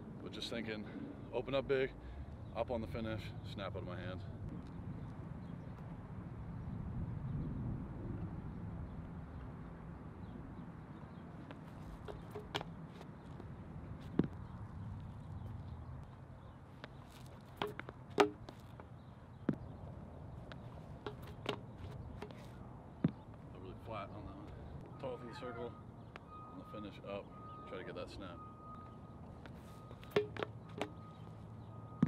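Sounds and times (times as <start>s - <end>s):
shoes scuffing on concrete: 11.5s - 13.4s, 16.8s - 18.9s.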